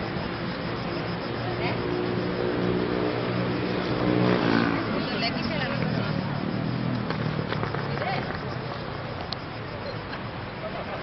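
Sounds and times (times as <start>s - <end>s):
city noise: 0.0s - 11.0s.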